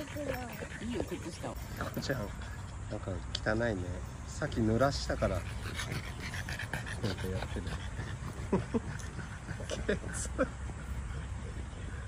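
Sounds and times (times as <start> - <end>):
dogs play-wrestling: 0.0 - 2.9, 4.1 - 12.0.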